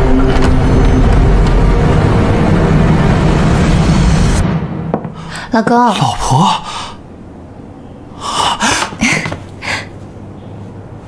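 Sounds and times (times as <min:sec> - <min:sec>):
person gasping breaths: 0:05.2 - 0:05.5, 0:06.5 - 0:07.0, 0:08.1 - 0:10.0.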